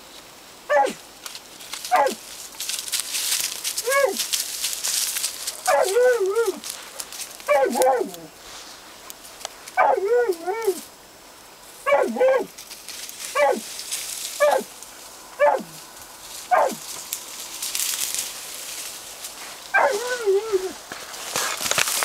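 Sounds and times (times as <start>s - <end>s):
dog barking: 0.7s - 1.0s, 1.9s - 2.2s, 3.9s - 4.2s, 5.7s - 6.2s, 7.5s - 8.2s, 9.8s - 10.1s, 11.8s - 12.5s, 13.4s - 13.6s, 14.4s - 14.7s, 15.4s - 15.8s, 16.5s - 16.8s, 19.7s - 20.3s.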